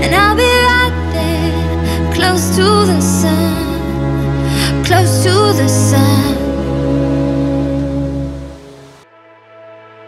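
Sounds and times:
pop song: 0.0 - 8.8.

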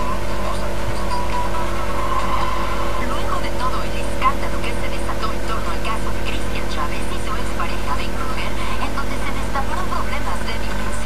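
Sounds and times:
steady low hum: 0.0 - 11.0
person speaking: 2.9 - 11.0.

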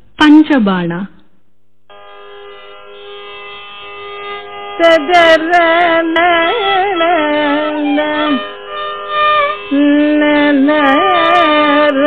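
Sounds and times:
tanpura drone: 1.9 - 12.0.

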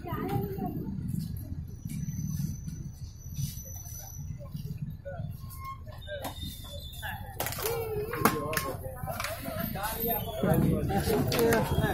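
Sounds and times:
people talking: 0.0 - 1.6, 3.5 - 11.9.

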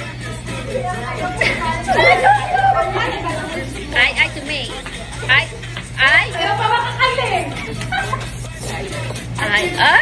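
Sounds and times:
faint music: 0.0 - 10.0
women talking and shouting: 0.5 - 10.0.

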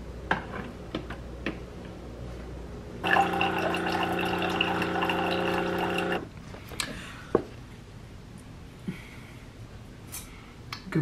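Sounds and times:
coffee gurgling into a mug: 3.0 - 6.3
coffee maker pump humming: 3.0 - 6.3.

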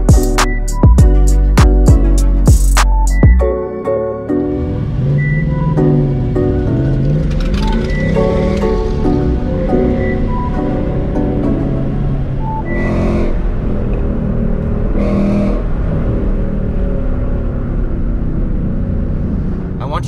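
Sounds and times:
background music: 0.0 - 16.4
car engine and road noise: 0.0 - 20.0.

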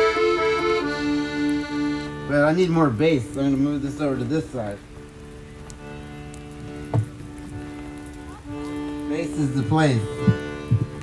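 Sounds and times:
accordion holding a chord: 0.0 - 11.0.

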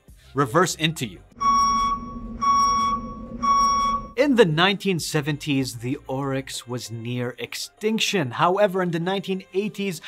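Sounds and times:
backup beeper beeping: 1.4 - 4.2
low hum: 1.4 - 4.2.

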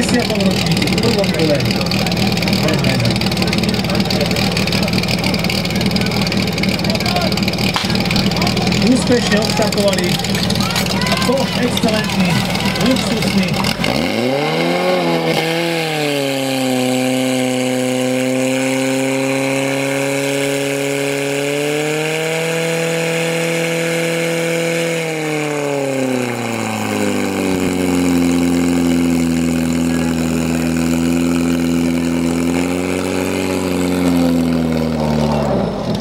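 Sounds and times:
pump engine running: 0.0 - 36.0.

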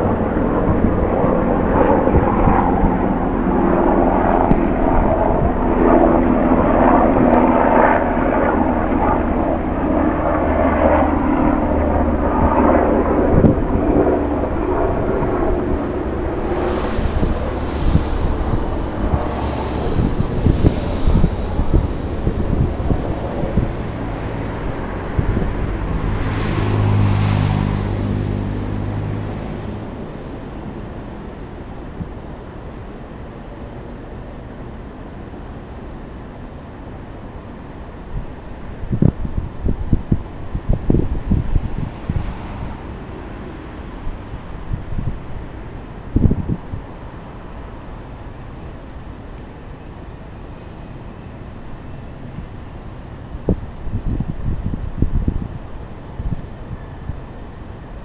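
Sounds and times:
loud engine rumble: 0.0 - 32.1
short hisses: 16.1 - 22.8.

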